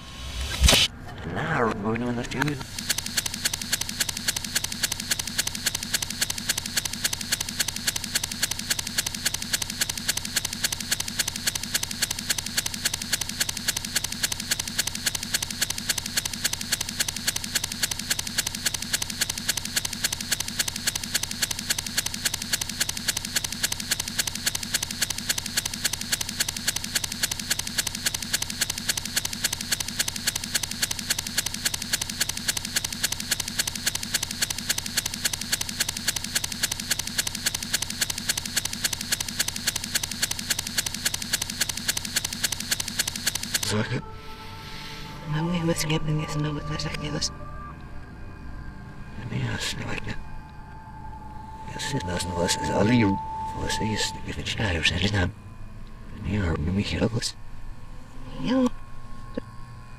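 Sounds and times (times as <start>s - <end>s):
looped soundtrack stutter: 0.0s - 1.0s.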